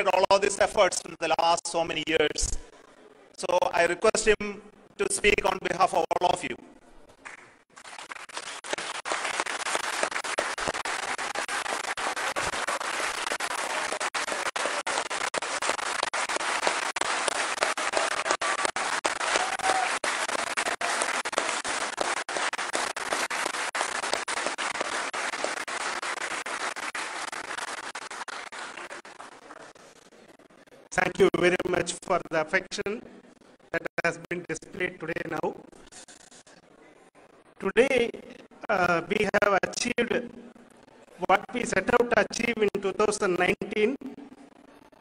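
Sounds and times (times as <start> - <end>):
crowd applauding: 7.2 - 30.1.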